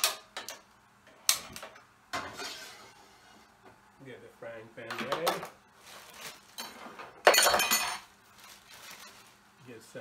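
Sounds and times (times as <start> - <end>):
plastic bag rustling: 5.7 - 6.7, 7.9 - 9.6
plastic bag crinkling: 8.2 - 9.5.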